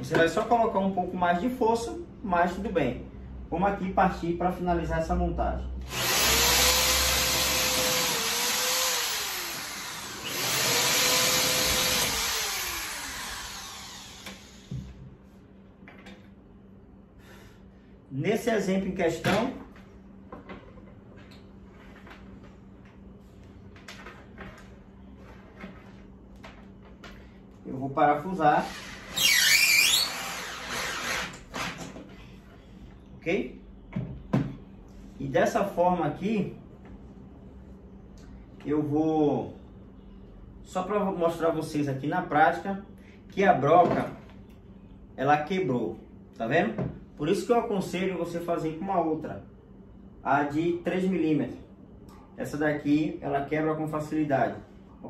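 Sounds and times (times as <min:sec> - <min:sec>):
electric drill running: 0:05.8 - 0:14.8, 0:28.6 - 0:31.7.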